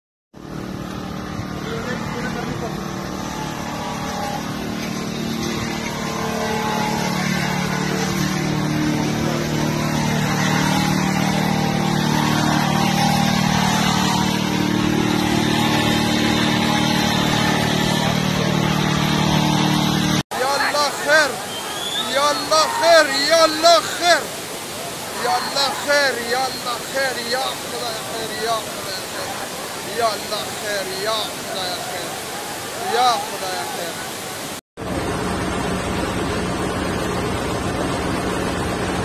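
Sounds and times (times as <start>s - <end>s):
vehicle engine hum: 0.4s - 33.4s, 34.1s - 39.0s
indistinct crowd voices: 0.4s - 34.6s.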